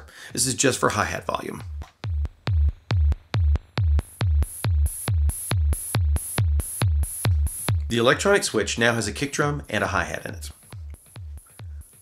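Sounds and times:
synthesizer kick drum beat: 0.3 - 12.0
white-noise hi-hat: 4.0 - 12.0.

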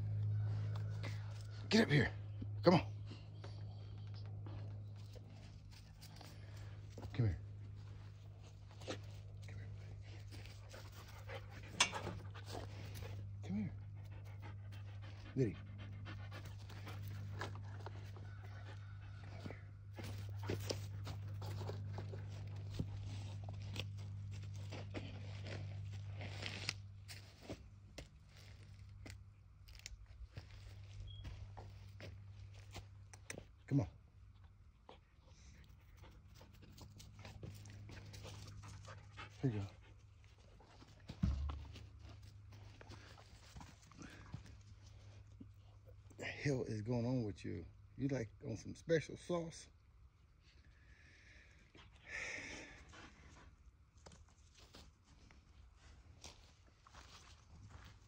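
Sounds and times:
steady low hum: 0.0 - 58.0
dog panting: 7.8 - 25.7, 34.8 - 41.1.

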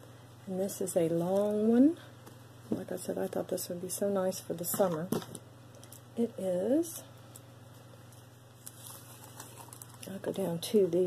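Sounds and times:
faint handling ticks and rustles: 7.2 - 10.6.

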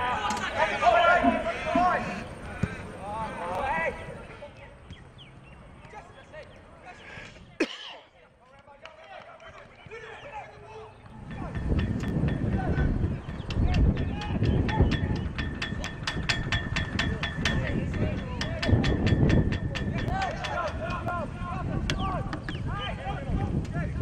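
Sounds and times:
wind rumble on microphone: 11.0 - 24.0.

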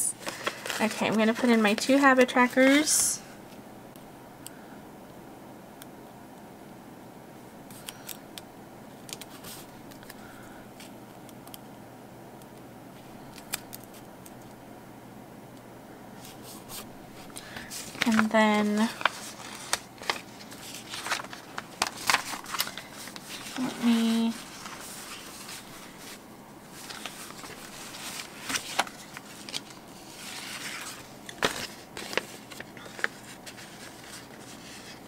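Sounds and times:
paper crinkling and rustling: 0.0 - 3.1, 16.2 - 35.0.

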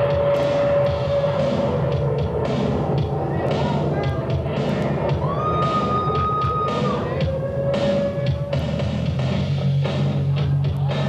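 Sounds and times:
pop music over sound system: 0.0 - 11.0
audience cheering and whooping: 4.5 - 8.9.

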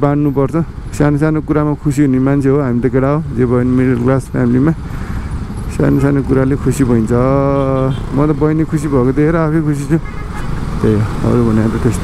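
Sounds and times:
man's voice: 0.0 - 4.8, 5.7 - 10.1, 10.7 - 12.0
motorcycle engine: 0.0 - 12.0
street traffic: 0.0 - 12.0.

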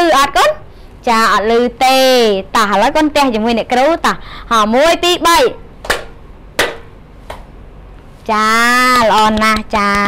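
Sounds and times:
sharp hand claps: 5.8 - 7.5.

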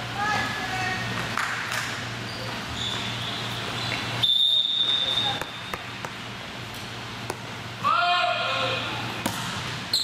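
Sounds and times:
referee's whistle: 4.2 - 5.8.

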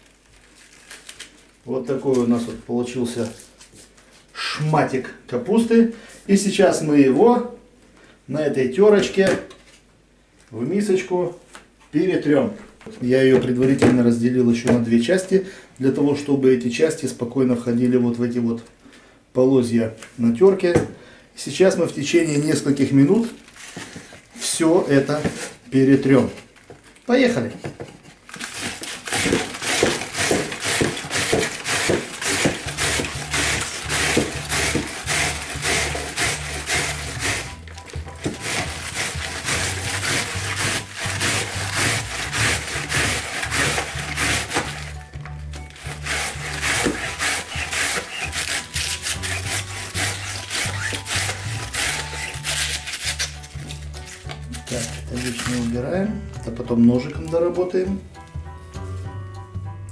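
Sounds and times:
cabbage rasping over shredder blades: 28.4 - 45.0, 45.7 - 55.8
background music with bass line: 31.8 - 59.9.

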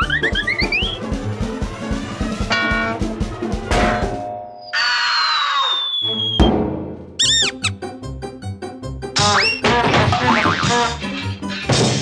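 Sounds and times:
cartoon background music: 0.0 - 12.0
squeaky boings: 4.5 - 6.4, 7.2 - 7.8
long falling whistle: 4.7 - 6.5.

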